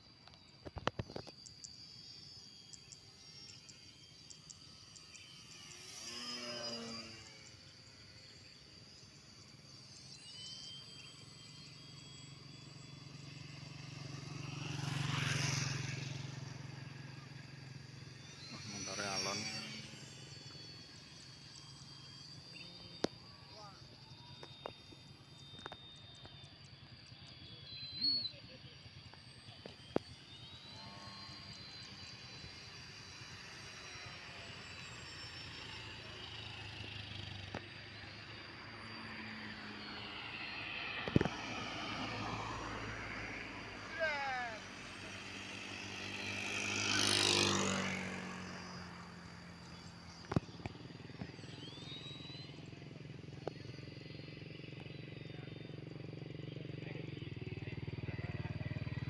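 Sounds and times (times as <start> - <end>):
model plane propellers whining: 0.0 - 59.0.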